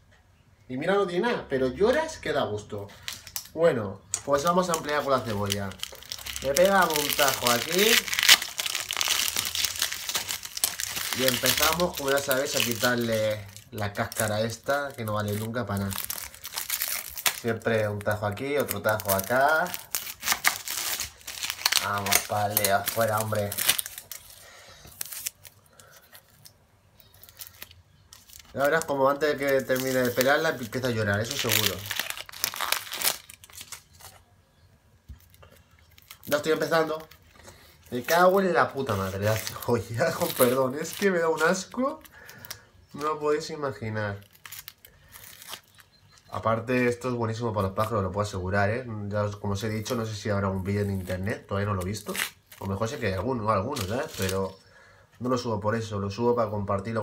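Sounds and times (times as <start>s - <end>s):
onion skin crackling and tearing: 3.0s - 34.2s, 35.1s - 48.1s, 49.5s - 54.6s.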